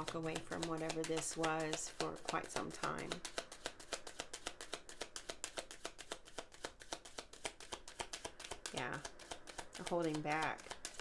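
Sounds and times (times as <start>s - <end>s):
cards being shuffled: 0.0s - 11.0s.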